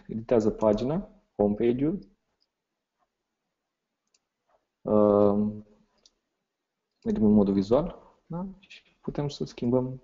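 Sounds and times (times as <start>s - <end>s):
faint computer clicks: 0.5s - 1.0s.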